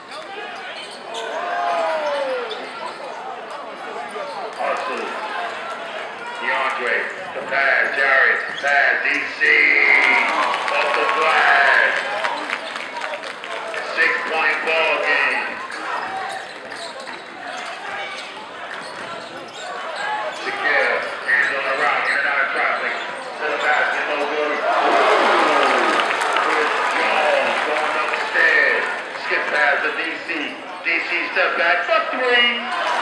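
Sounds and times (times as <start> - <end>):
crowd voices: 0.0 - 33.0.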